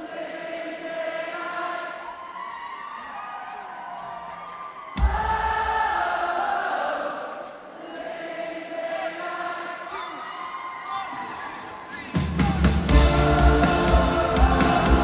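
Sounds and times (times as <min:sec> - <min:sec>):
voices singing: 0:00.0 - 0:15.0
crowd cheering: 0:01.8 - 0:07.2, 0:09.9 - 0:15.0
live synth-pop band music: 0:09.9 - 0:15.0.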